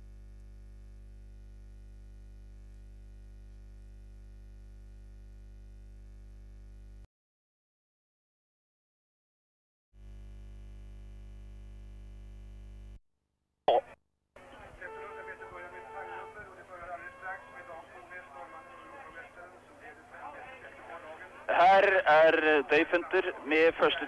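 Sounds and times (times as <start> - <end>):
faint background music: 14.4 - 24.0
man talking: 14.6 - 24.0.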